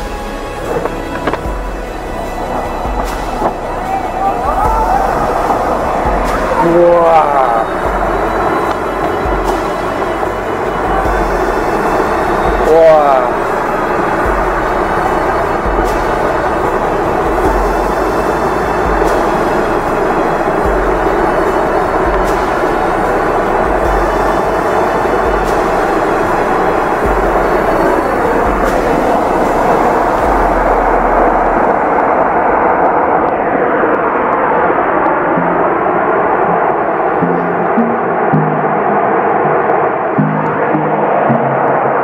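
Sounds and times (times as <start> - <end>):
wind buffeting microphone: 0.0 - 42.0.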